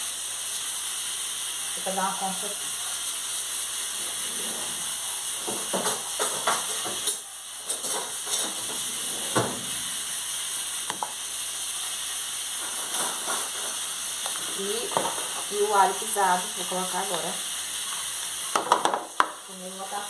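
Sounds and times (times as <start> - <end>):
pan sizzling: 0.0 - 20.0
utensils and dishes clinking: 3.9 - 9.8, 12.6 - 15.5.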